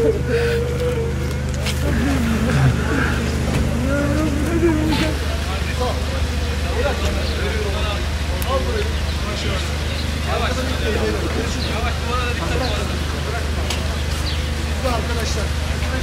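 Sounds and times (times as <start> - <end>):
man weeping: 0.0 - 1.2, 1.8 - 5.4
crowd voices: 0.0 - 16.0
low engine hum: 0.0 - 16.0.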